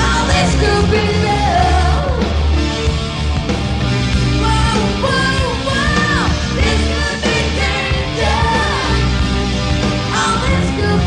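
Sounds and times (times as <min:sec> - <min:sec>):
hard rock band playing: 0:00.0 - 0:11.0.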